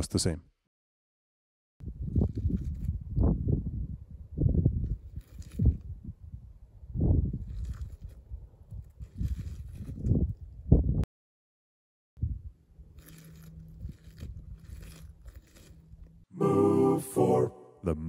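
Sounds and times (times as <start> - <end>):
wind buffeting microphone: 1.8 - 11.0, 12.2 - 12.6.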